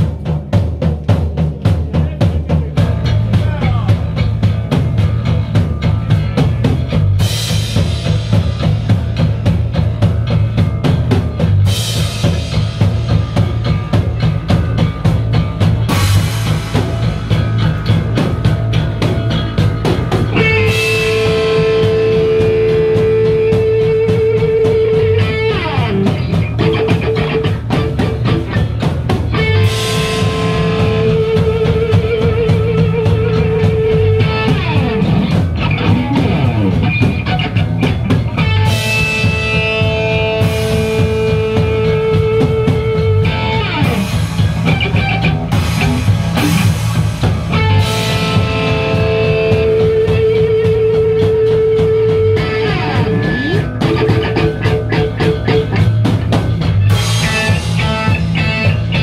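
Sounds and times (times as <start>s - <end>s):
punk rock band playing: 0.0s - 59.0s
guitar holding wavering high note: 47.6s - 56.2s.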